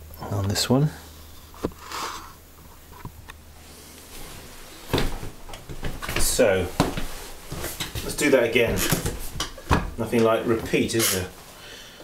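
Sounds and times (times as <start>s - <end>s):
short hiss: 1.5s - 2.4s.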